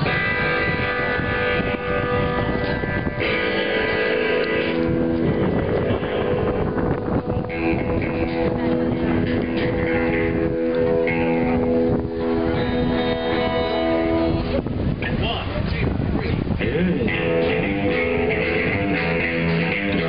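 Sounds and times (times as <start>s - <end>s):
electric guitars sustained chords: 0.0s - 15.0s, 16.5s - 20.0s
wind rumble on microphone: 0.0s - 20.0s.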